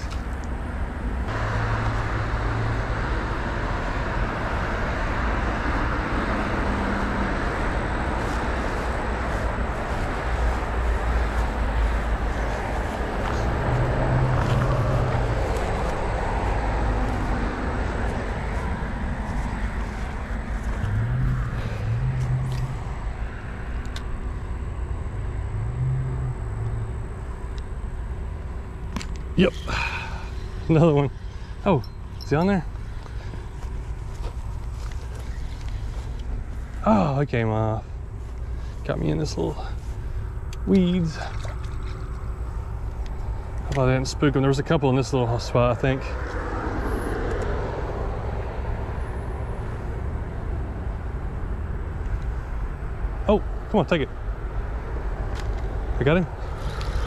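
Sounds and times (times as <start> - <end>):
road traffic noise: 0.0 - 57.0
vehicles passing close: 0.0 - 57.0.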